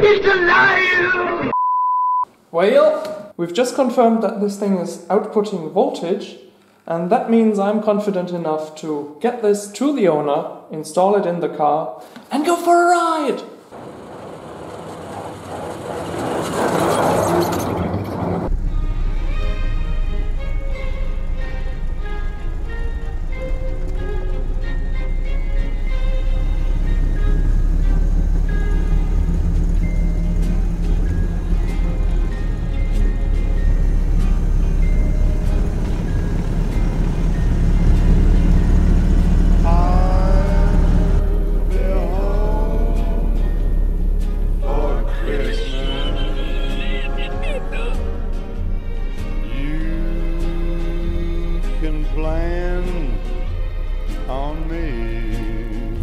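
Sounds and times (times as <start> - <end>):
road noise: 13.6 - 56.0
car engine rumble: 13.7 - 56.0
passing vehicle rush: 13.7 - 56.0
background music: 18.5 - 56.0.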